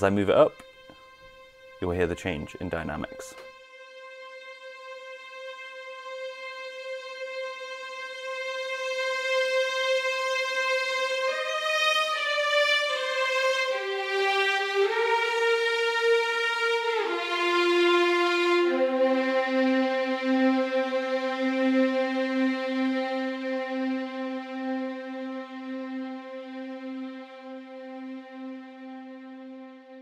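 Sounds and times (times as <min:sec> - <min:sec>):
legato violin section: 0:00.0 - 0:30.0.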